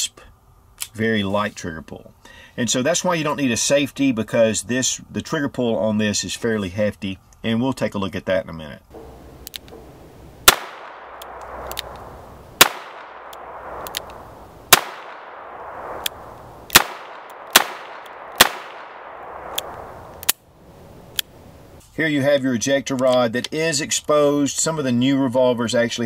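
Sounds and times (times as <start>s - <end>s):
revolver shots with echo: 8.9s - 20.1s
faint cracks: 9.0s - 20.5s.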